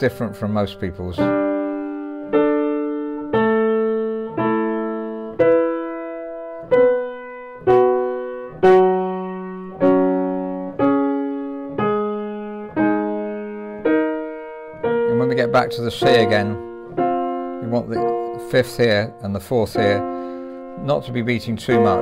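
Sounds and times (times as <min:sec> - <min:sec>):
piano intervals ringing: 0:00.0 - 0:22.0.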